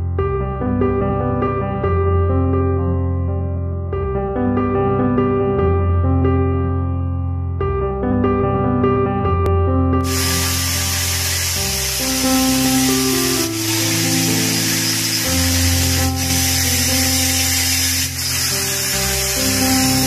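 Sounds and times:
background music: 0.0s - 20.0s
angle grinder cutting metal mesh: 10.1s - 20.0s.

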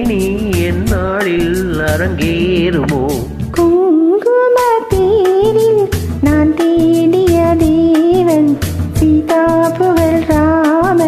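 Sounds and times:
backing track with drum beat: 0.0s - 3.8s, 4.6s - 11.0s
person singing karaoke: 0.0s - 11.0s.

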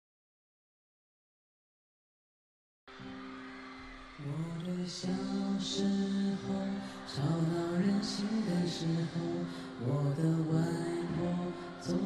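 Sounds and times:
man singing a slow ballad: 4.2s - 12.0s.

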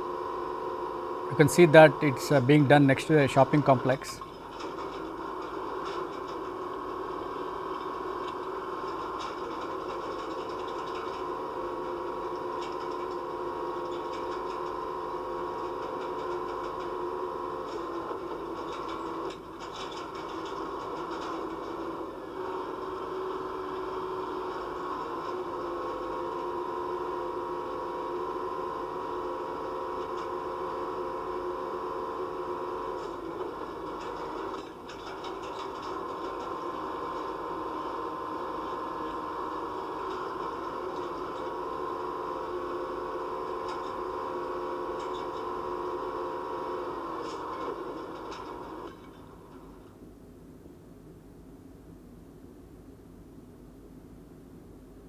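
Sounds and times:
crane engine and winch droning: 0.0s - 50.6s
clattering: 32.9s - 42.0s.

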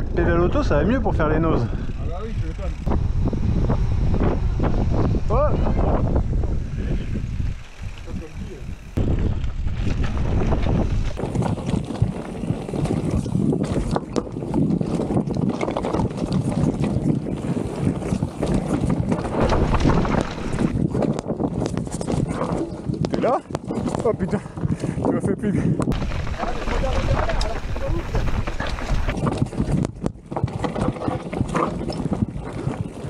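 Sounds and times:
wind buffeting microphone: 0.0s - 33.0s
bike rattling over stones: 5.8s - 25.0s, 25.9s - 33.0s.

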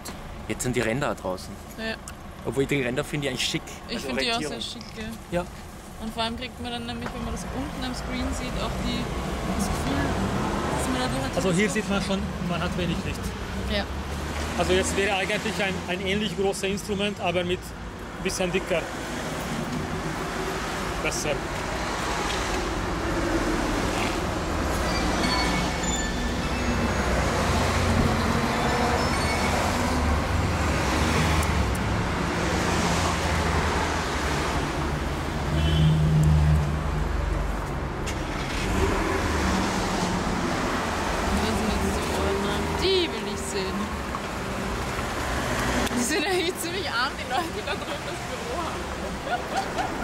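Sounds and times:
passing cars rumble: 0.0s - 50.0s.

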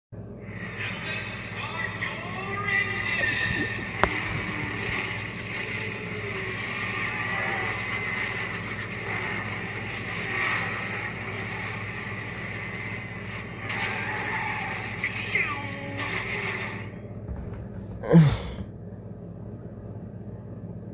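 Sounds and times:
steady hum: 0.2s - 20.9s
voices from speaker: 0.5s - 5.0s.

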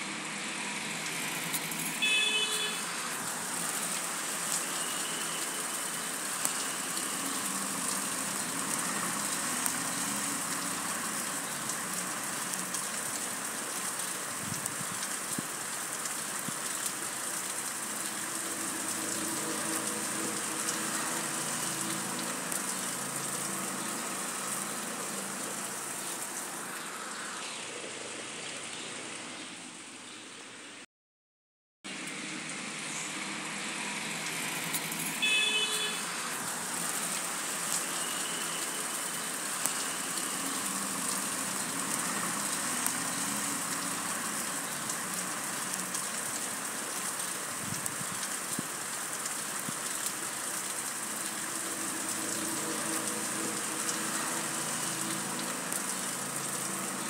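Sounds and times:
heavy rain falling: 0.0s - 30.0s, 31.9s - 57.0s.

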